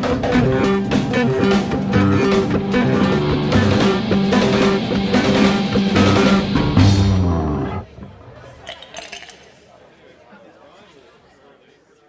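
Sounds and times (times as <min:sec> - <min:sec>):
background chatter of voices: 0:07.3 - 0:12.0.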